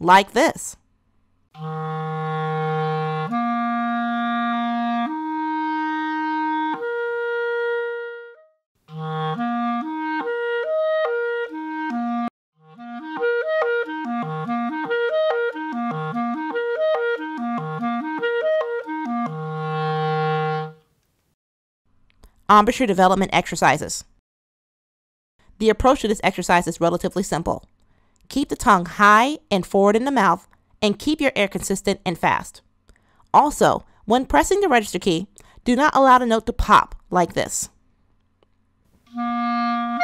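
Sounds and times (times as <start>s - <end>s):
clarinet playing solo: 1.6s - 20.9s, 39.1s - 40.0s
breaths: 27.7s - 28.3s, 32.9s - 34.1s, 35.3s - 35.6s.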